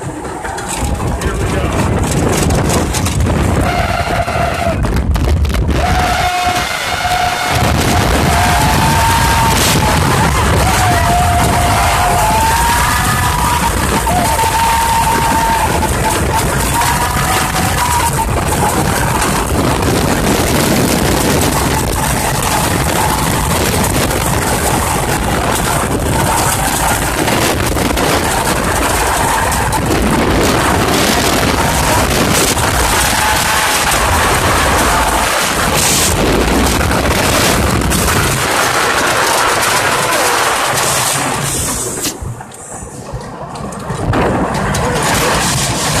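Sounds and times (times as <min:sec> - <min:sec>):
roller coaster train rattling: 0:00.0 - 0:46.0
wind rushing over microphone: 0:00.0 - 0:46.0.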